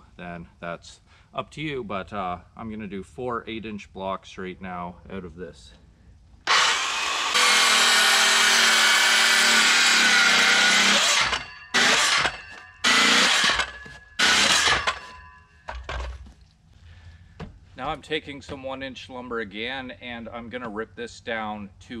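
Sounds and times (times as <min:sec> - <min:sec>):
circular saw cutting wood: 0:06.5 - 0:15.3.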